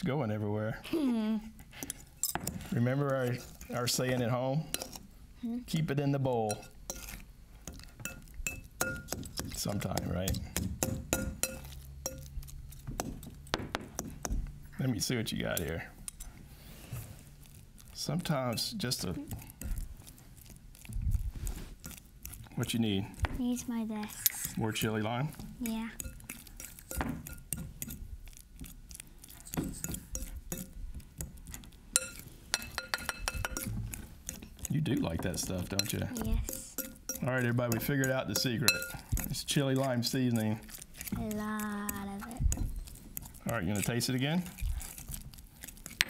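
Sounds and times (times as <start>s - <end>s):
fork clinking against glass bowl: 6.5s - 9.2s, 10.3s - 12.3s, 26.0s - 28.0s, 29.4s - 30.8s, 31.9s - 41.1s.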